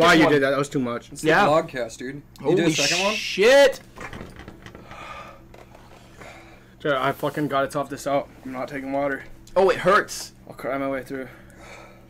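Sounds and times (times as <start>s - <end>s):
man talking loudly: 2.5s - 3.8s.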